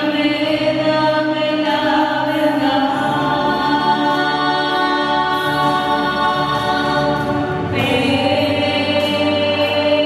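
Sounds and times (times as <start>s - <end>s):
women singing worship song: 0.0s - 10.0s.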